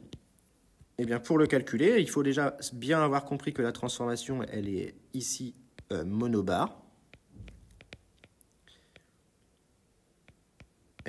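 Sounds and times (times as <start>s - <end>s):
stylus tapping on glass screen: 7.1s - 9.1s, 10.2s - 11.0s.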